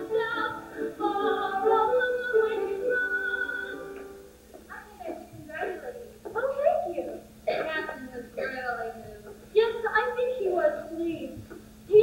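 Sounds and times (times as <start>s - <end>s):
woman speaking: 4.7s - 12.0s.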